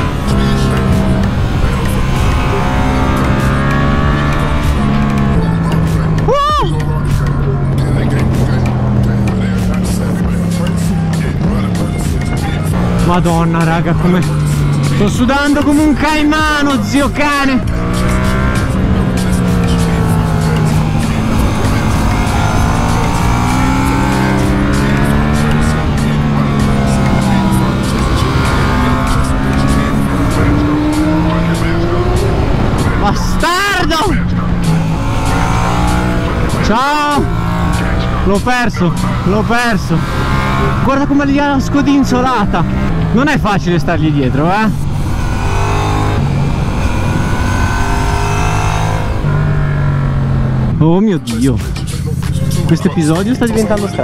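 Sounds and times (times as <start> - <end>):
motorcycle engine revving: 0.0 - 54.0.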